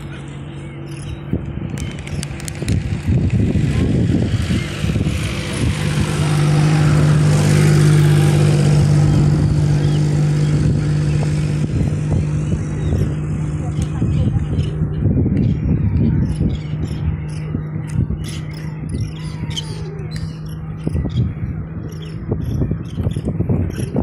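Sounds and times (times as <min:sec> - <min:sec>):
motor engine running: 0:00.0 - 0:24.0.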